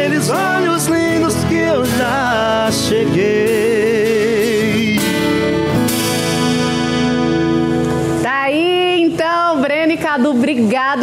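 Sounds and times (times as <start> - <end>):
men singing with vibrato: 0.0 - 7.0
acoustic guitars chord: 0.0 - 10.7.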